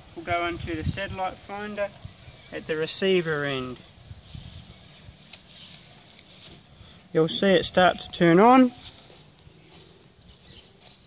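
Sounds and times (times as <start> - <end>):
faint handling sounds: 3.8 - 7.5, 8.6 - 11.0.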